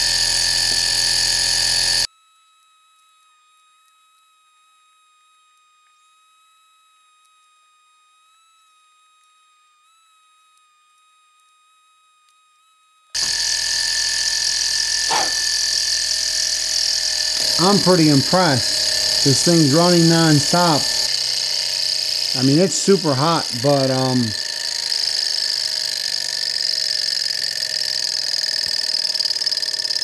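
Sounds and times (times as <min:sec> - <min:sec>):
model engine whirring rattle: 0:13.2 - 0:30.0.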